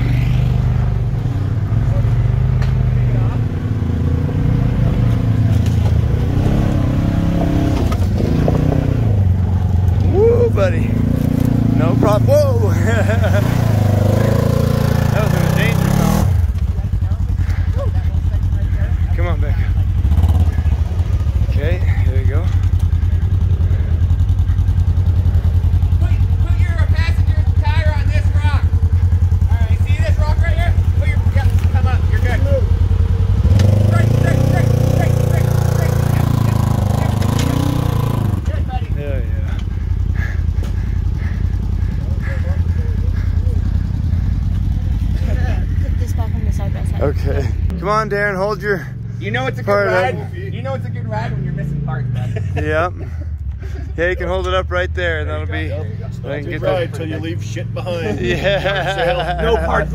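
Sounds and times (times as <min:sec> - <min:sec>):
engines running at low revs: 0:00.0 - 0:59.9.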